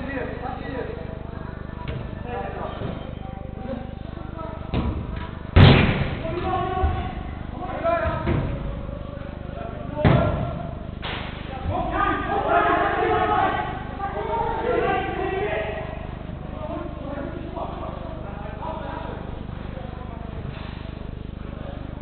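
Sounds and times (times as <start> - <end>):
ball impact with echo: 4.7 - 6.5, 10.0 - 11.5
ball thud: 5.6 - 6.4
players shouting: 11.6 - 16.1.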